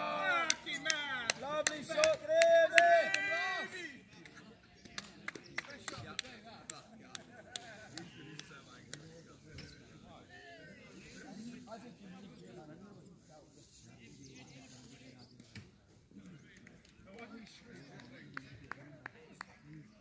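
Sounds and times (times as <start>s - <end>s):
sharp claps: 0.4s - 3.2s, 4.2s - 9.2s, 16.5s - 19.9s.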